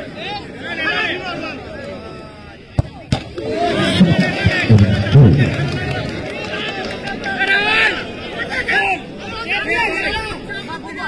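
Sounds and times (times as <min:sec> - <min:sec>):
crowd shouting and cheering: 0:02.8 - 0:10.5.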